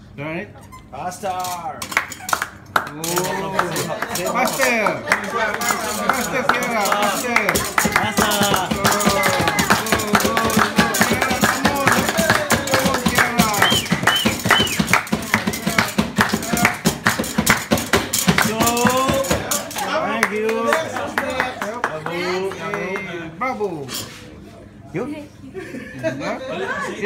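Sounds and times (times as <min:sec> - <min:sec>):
men clapping a fast rhythm: 0:01.9 - 0:23.2
people talking: 0:02.9 - 0:16.9, 0:18.3 - 0:27.0
people laughing: 0:03.0 - 0:16.8, 0:25.5 - 0:27.0.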